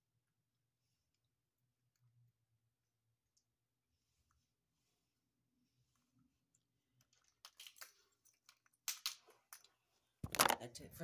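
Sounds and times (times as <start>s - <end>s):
person speaking: 10.2s - 11.0s.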